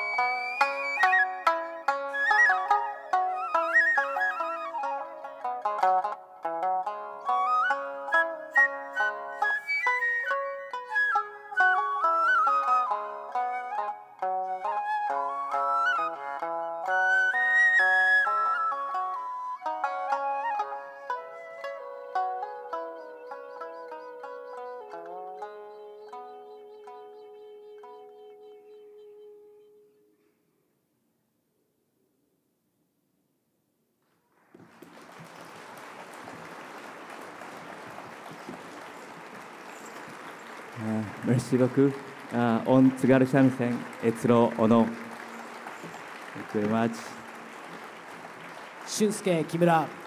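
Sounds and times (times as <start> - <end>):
shamisen plucked notes: 0.0 - 28.7
bamboo flute melody: 0.0 - 30.2.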